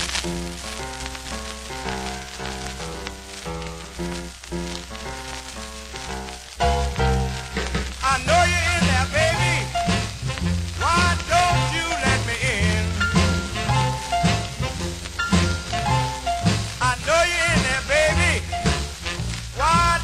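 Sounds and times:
rhythm and blues band record: 0:00.0 - 0:20.0
vinyl surface crackle: 0:00.0 - 0:20.0.

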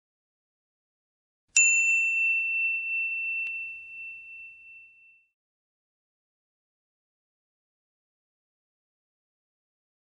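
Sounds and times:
high bell-like chime: 0:01.6 - 0:05.4.

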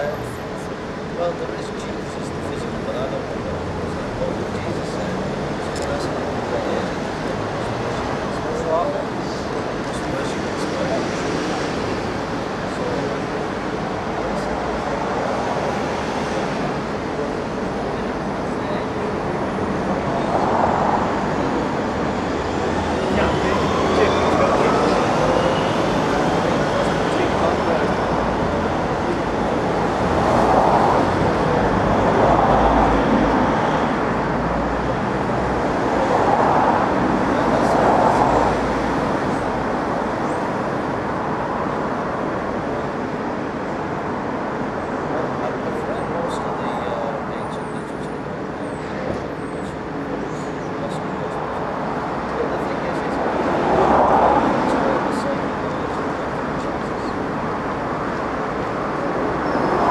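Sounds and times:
indistinct voices: 0:00.0 - 0:59.9
street traffic: 0:00.0 - 0:59.9.

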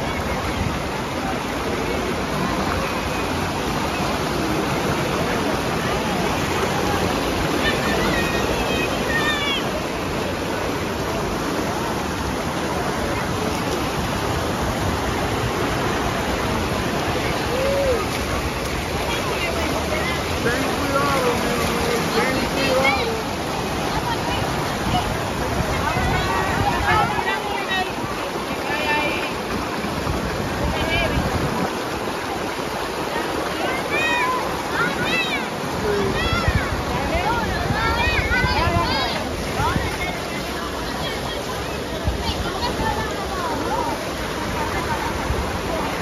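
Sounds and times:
rushing river rapids: 0:00.0 - 0:46.0.

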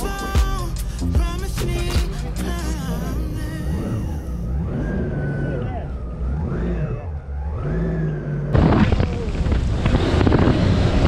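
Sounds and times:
boat engine revving: 0:00.0 - 0:11.0.

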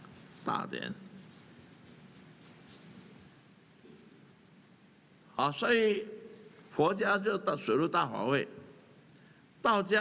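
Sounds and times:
marker scratching on paper: 0:00.0 - 0:03.3.

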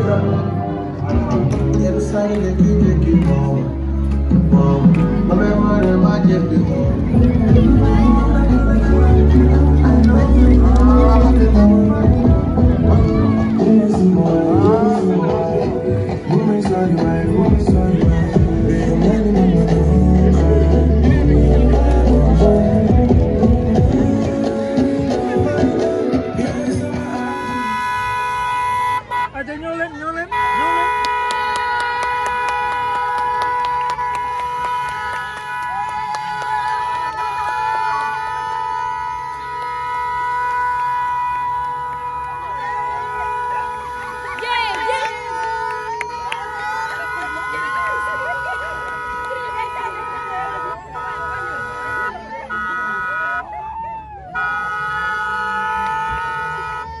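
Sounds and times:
voices: 0:00.0 - 0:57.0
children's voices: 0:12.8 - 0:16.8
car horn blasts: 0:26.4 - 0:29.5, 0:30.2 - 0:36.0, 0:36.8 - 0:53.5, 0:54.3 - 0:57.0.

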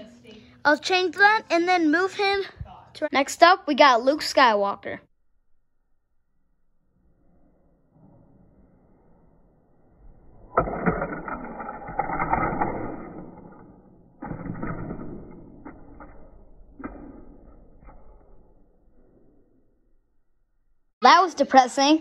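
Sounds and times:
toy car clicking and knocking on ramps: 0:10.6 - 0:18.4.

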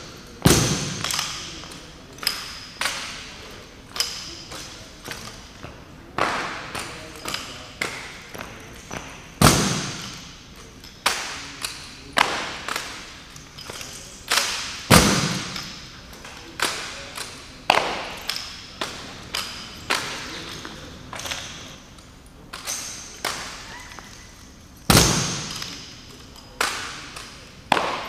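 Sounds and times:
rifles clacking and slapping: 0:06.2 - 0:28.0.

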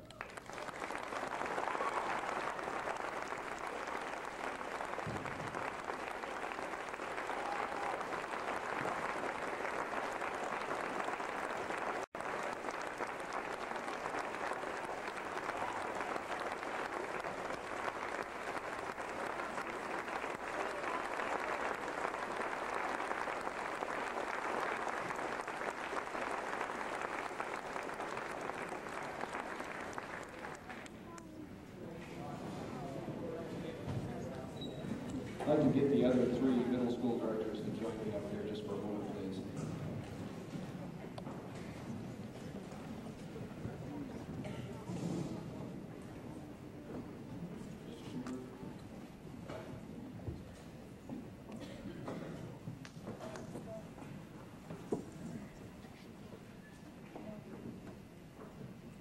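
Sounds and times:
large audience applauding: 0:00.0 - 0:31.0.

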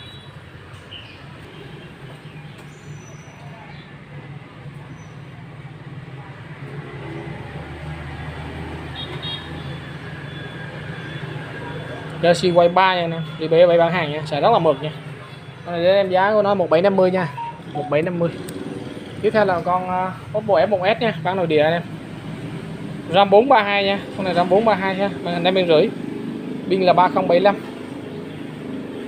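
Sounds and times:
vehicle rumbling: 0:00.0 - 0:29.0.

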